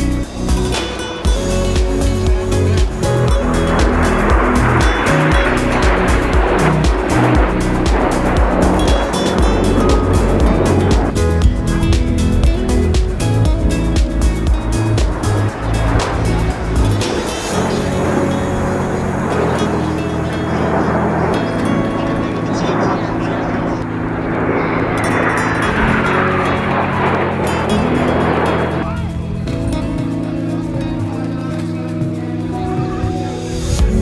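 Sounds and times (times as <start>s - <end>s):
background music with steady beat: 0.0s - 23.0s, 25.1s - 34.0s
jet aircraft rushing: 0.2s - 31.3s.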